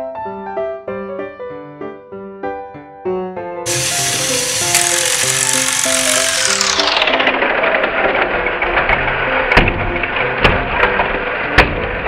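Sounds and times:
toy train motors whirring: 3.7s - 8.1s.

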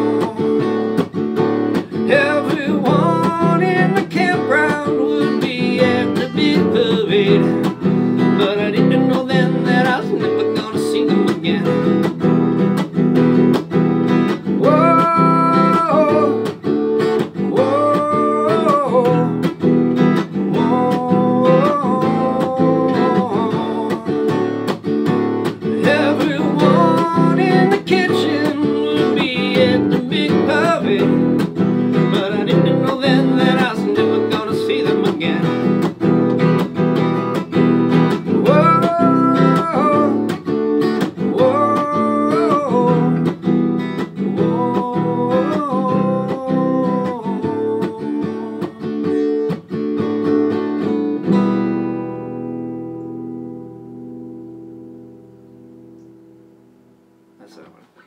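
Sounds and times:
man singing: 0.0s - 12.3s, 14.2s - 36.1s, 37.3s - 49.6s
acoustic guitar strumming: 0.0s - 57.8s.

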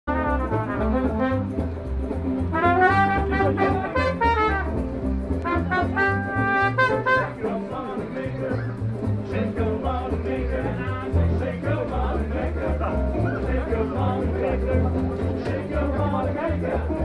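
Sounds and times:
brass horns playing melody: 0.1s - 7.6s
plucked double bass: 0.1s - 17.0s.

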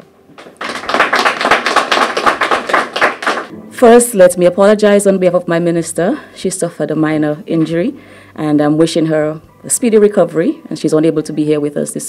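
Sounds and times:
audience applauding: 0.4s - 3.5s.

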